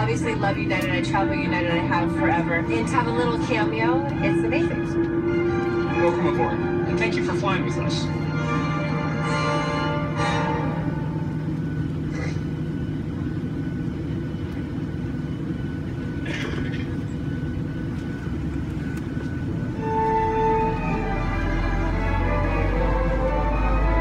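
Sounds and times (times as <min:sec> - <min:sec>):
airliner cabin rumble: 0:00.0 - 0:24.0
music over cabin audio: 0:00.0 - 0:24.0.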